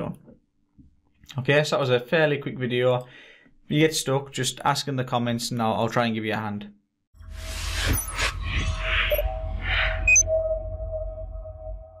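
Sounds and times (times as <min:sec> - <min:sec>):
deep rumble: 0:07.2 - 0:12.0
whoosh: 0:07.2 - 0:12.0.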